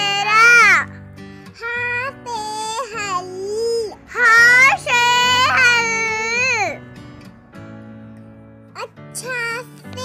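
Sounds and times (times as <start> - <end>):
soft background music: 0.0 - 10.0
child-like voice calling sing-song: 1.6 - 6.8.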